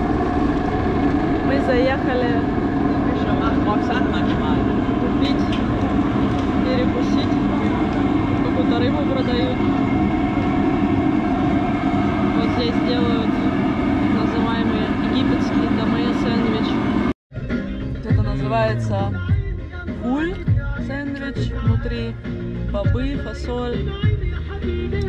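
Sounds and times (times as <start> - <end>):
indistinct voices talking: 0.0 - 23.9
car road and engine noise: 0.0 - 25.0.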